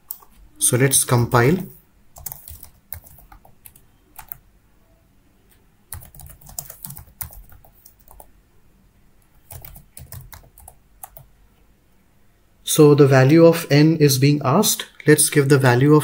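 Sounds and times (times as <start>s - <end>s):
keyboard typing clicks: 2.2s - 4.4s, 5.9s - 8.3s, 9.4s - 11.3s.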